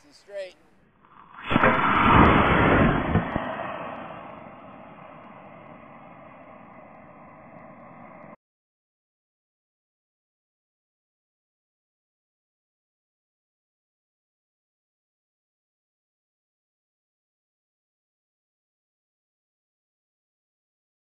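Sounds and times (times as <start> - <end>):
person speaking: 0.0 - 0.7.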